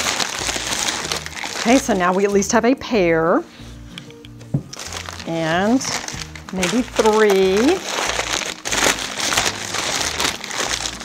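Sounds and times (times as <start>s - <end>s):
packing paper crinkling: 0.0s - 2.5s, 4.7s - 11.0s.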